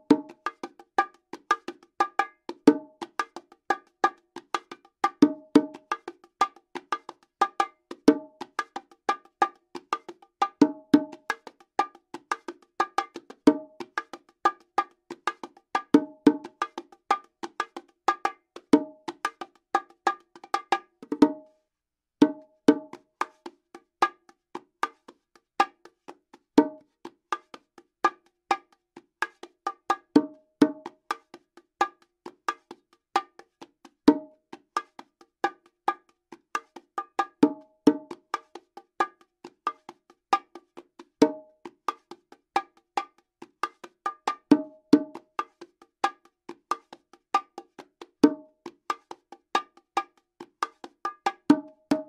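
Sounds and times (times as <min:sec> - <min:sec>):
bongos played by hand: 0:00.0 - 0:21.5, 0:22.2 - 0:52.0.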